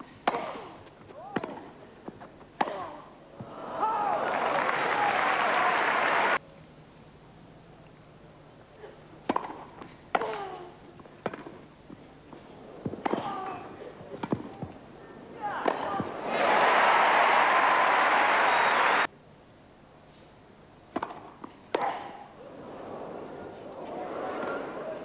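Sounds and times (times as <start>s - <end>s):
tennis ball hits: 0.2s - 2.8s, 9.2s - 10.6s, 11.2s - 11.6s, 12.3s - 14.8s, 15.4s - 16.6s, 20.9s - 22.2s
crowd applause: 3.5s - 6.4s, 16.0s - 19.1s.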